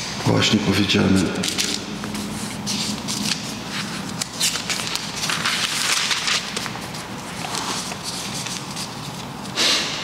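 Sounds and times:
book pages rustling: 1.4 - 9.5.

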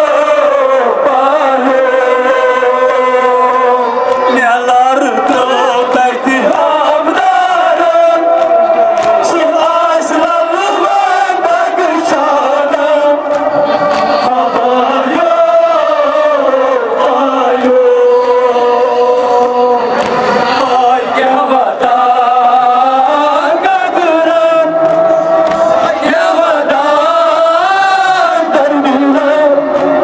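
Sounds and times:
men chanting a lament over loudspeaker: 0.0 - 30.0.

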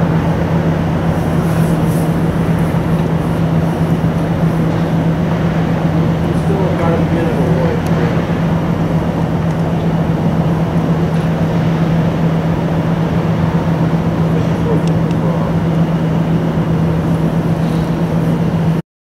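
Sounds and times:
low hum: 0.0 - 18.8
train running rumble: 0.0 - 18.8.

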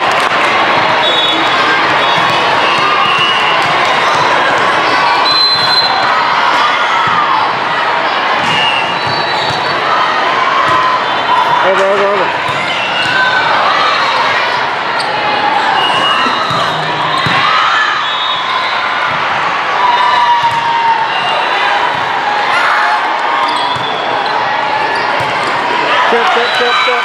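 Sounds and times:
volleyball hits: 0.1 - 5.0, 6.5 - 7.7, 8.3 - 9.8, 10.6 - 13.5, 15.8 - 17.6, 20.1 - 22.5, 23.5 - 26.7
people shouting: 9.6 - 27.0.

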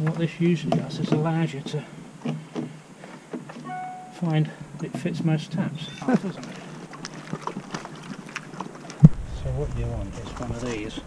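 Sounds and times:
high squeak: 3.6 - 4.2.

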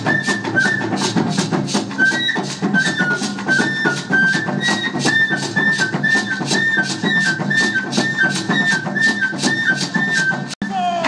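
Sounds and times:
drum ensemble playing: 0.0 - 11.0.

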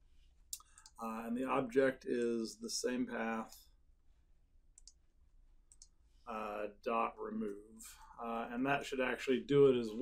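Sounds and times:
faint mouse clicks: 0.5 - 1.0, 4.8 - 5.0, 5.7 - 6.0.

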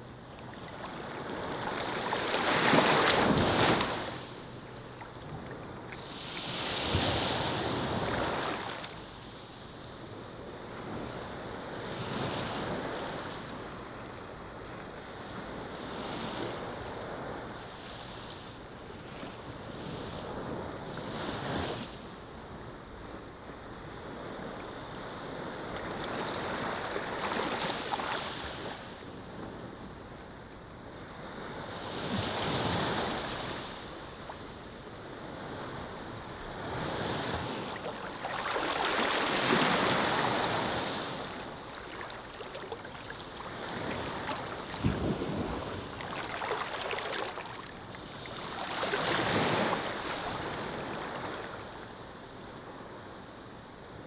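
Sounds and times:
sea waves washing onto beach: 0.7 - 4.9, 32.0 - 51.8.

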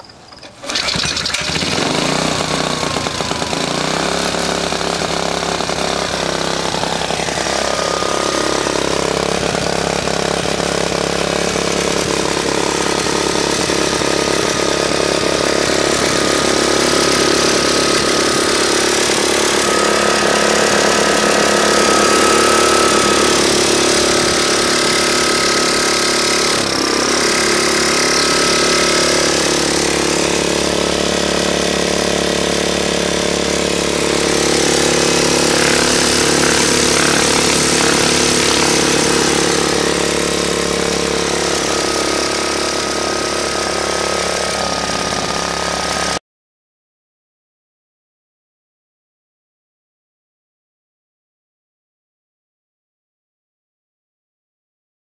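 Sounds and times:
small engine running: 0.0 - 46.2.

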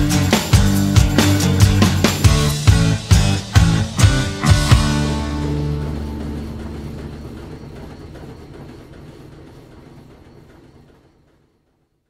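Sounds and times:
rock chord ringing out: 0.0 - 8.2.

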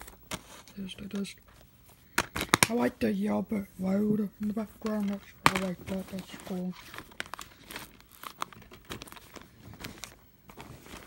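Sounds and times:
plastic disc cases clicking: 2.2 - 2.9, 4.8 - 11.0.

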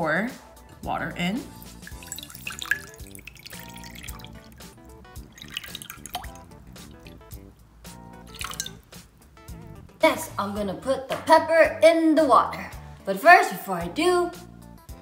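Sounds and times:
background music: 0.0 - 15.0
water pouring into glass dish: 1.5 - 7.5, 8.2 - 9.0
water splashing and dripping: 1.5 - 7.5, 8.2 - 9.2.

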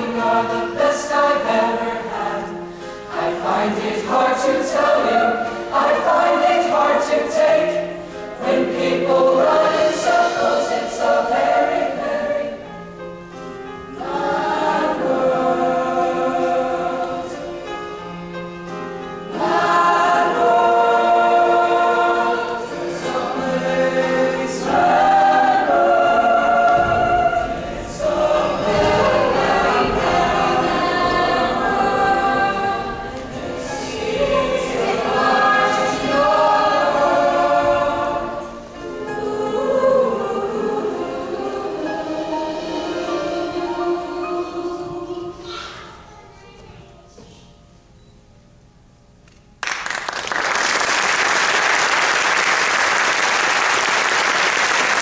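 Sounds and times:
choir singing in harmony: 0.0 - 46.1, 51.5 - 55.0.

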